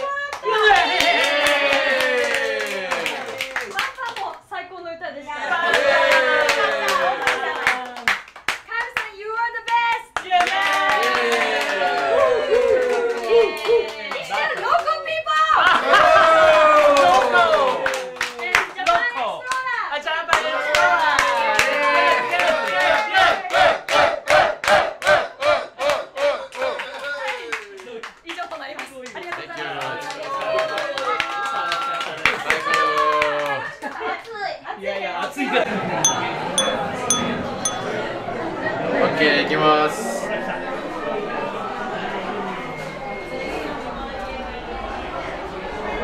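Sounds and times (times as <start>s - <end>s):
group clapping in time: 0.0s - 4.4s, 5.6s - 15.0s, 16.8s - 19.6s, 20.3s - 34.4s.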